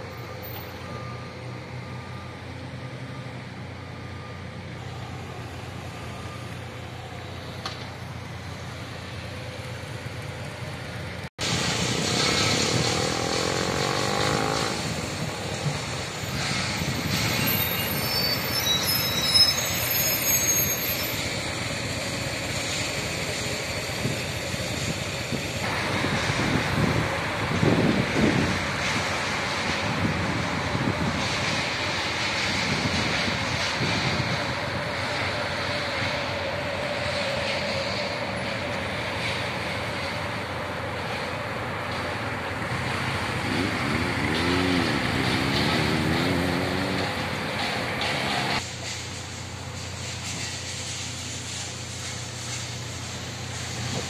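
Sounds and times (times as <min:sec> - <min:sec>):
cars driving past: 0:00.0 - 0:18.5, 0:25.6 - 0:49.0.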